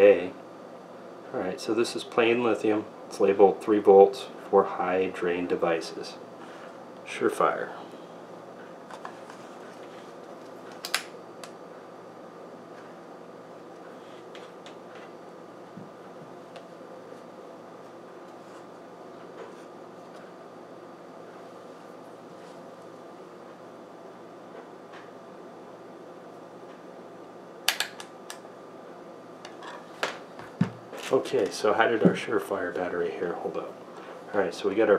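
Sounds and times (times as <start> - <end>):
steady mechanical hum: 0.0 - 34.9.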